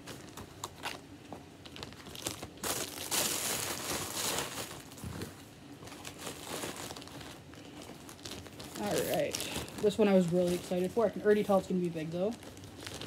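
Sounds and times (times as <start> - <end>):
plastic bag crinkling and rustling: 0.0 - 13.0.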